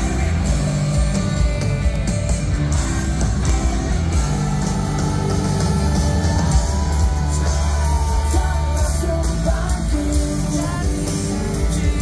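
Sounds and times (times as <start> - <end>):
live rock band playing loudly: 0.0 - 12.0.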